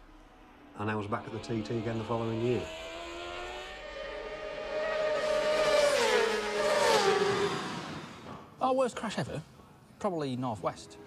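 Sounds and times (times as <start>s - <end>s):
racing motorcycle engine passing: 0.0s - 8.5s.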